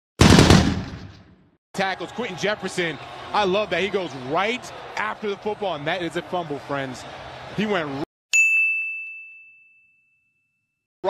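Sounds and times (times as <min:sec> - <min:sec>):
man commentating: 0:01.8 - 0:08.1.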